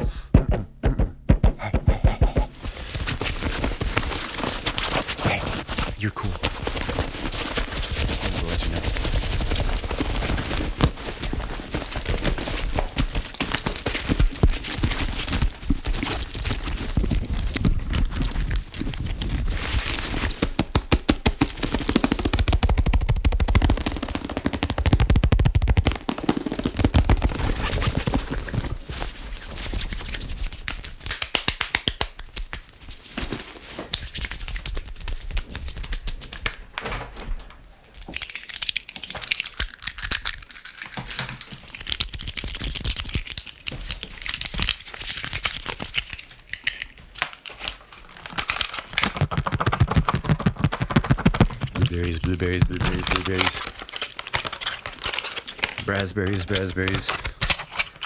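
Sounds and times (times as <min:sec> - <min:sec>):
quick hand movements: 0:00.0 - 0:17.0, 0:49.0 - 0:58.0
tapping and scratching on a bag: 0:01.9 - 0:31.6, 0:48.2 - 0:58.0.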